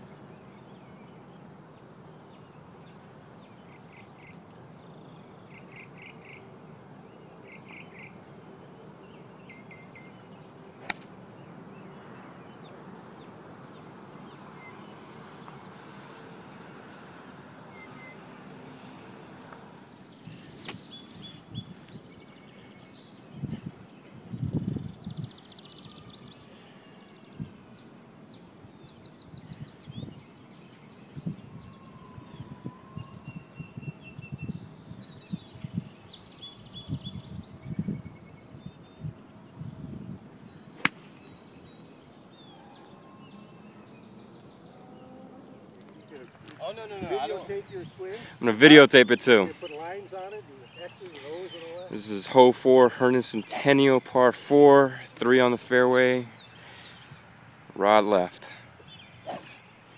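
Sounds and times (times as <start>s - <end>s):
birds chirping: 0.0s - 59.9s
steady background hiss: 0.0s - 59.9s
low rumbling microphone bumps: 24.3s - 25.3s.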